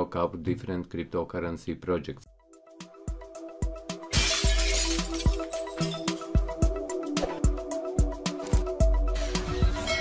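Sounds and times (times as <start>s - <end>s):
glass shattering effect: 4.1s - 6.4s.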